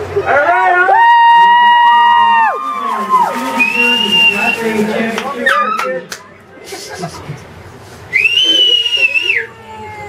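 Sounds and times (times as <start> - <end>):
person whistling: 3.6 - 4.6, 8.1 - 9.5.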